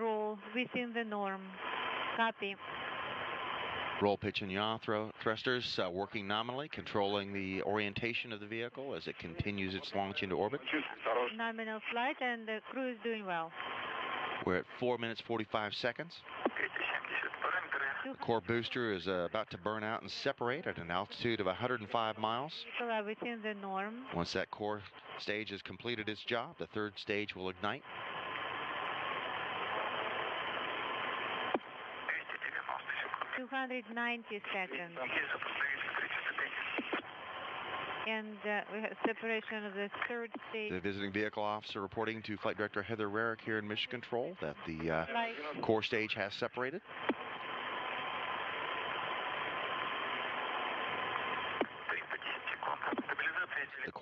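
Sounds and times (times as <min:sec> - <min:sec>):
radio channel hiss: 0:00.0 - 0:54.0
radio click: 0:16.3 - 0:18.0, 0:35.1 - 0:37.1, 0:47.0 - 0:50.5, 0:51.1 - 0:53.9.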